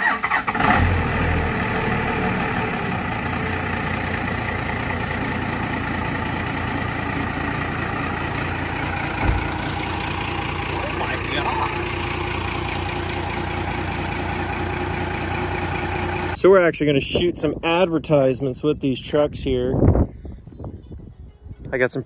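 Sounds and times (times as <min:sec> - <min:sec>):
diesel engine starting and idling: 0:00.0 - 0:17.2
short thump: 0:09.2 - 0:09.5.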